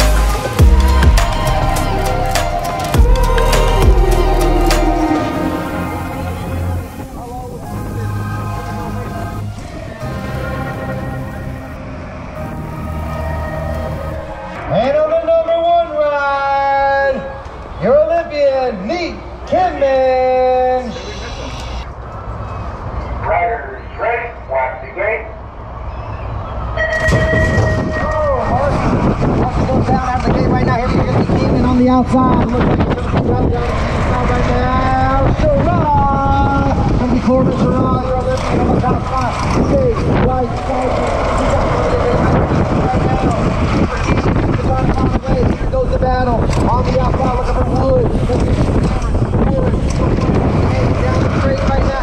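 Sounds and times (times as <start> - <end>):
wind rush: 0.0 - 16.0, 26.4 - 52.0
electronic beep: 20.9 - 21.9.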